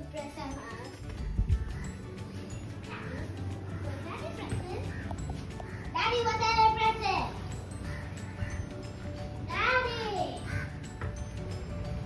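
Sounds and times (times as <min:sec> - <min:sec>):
distant children calling and playing: 0:00.0 - 0:12.0.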